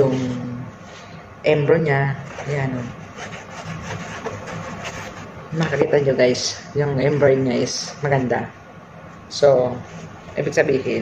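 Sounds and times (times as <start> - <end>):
fingertip rubbing embroidered cap: 2.2 - 5.9.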